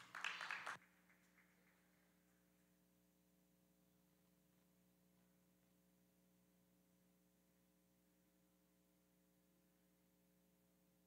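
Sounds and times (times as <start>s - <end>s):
people clapping: 0.0s - 2.4s
faint steady hum: 0.8s - 11.0s.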